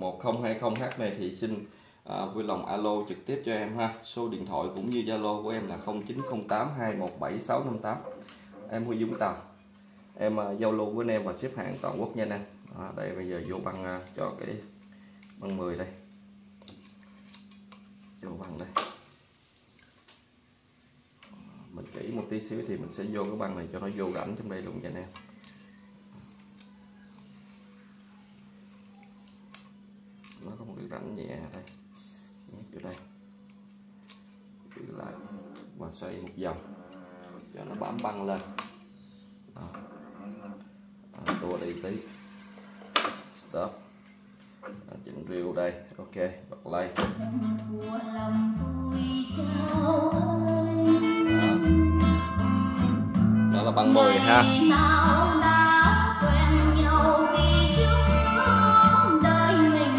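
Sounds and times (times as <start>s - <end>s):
steady low hum: 0.0s - 59.9s
old song with guitar: 47.2s - 59.9s.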